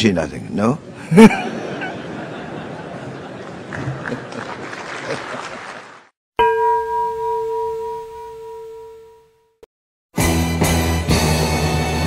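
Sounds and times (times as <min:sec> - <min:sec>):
struck chime ringing: 0:06.4 - 0:09.6.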